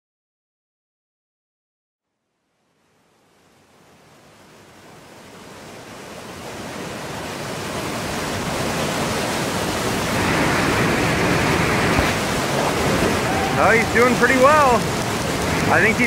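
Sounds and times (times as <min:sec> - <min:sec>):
rushing white water roar: 0:02.7 - 0:16.0.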